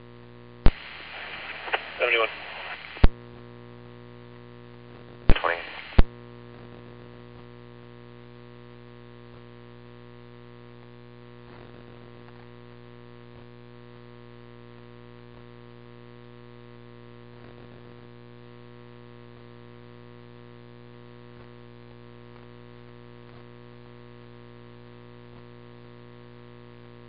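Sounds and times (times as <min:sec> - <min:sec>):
radio scanner static hum: 0:00.0 - 0:27.0
faint clicks: 0:00.7 - 0:03.1, 0:05.3 - 0:06.1
short crackles: 0:00.7 - 0:03.1, 0:05.3 - 0:06.1.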